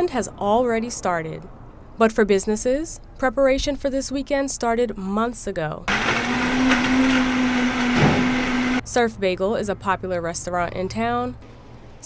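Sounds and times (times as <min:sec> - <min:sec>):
blender whirring: 0:05.9 - 0:08.8.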